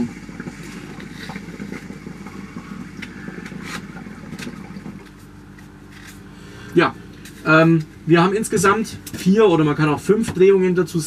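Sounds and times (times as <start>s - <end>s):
hookah water bubbling: 0.0s - 11.0s.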